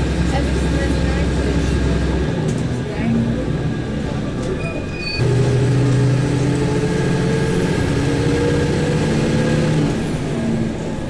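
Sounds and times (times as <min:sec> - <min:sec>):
road noise: 0:00.0 - 0:11.0
vehicle engine driving: 0:00.0 - 0:11.0.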